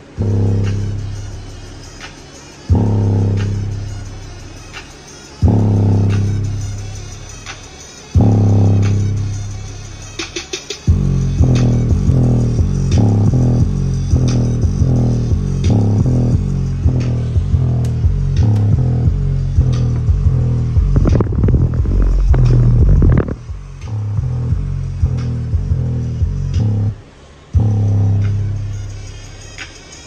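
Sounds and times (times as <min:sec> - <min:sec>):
loud bass-heavy music: 0:00.0 - 0:30.0.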